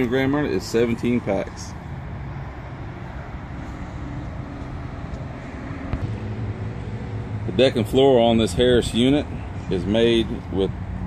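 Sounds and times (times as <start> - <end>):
low hum: 2.4 - 9.7.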